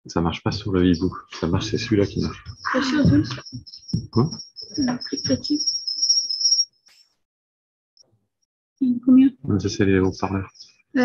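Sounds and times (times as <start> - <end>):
high-pitched feedback whistle: 2.3 - 6.8.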